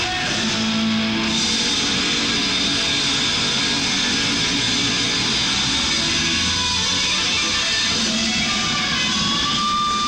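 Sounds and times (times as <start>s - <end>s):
distorted electric guitars: 0.0s - 10.0s
drums: 0.0s - 10.0s.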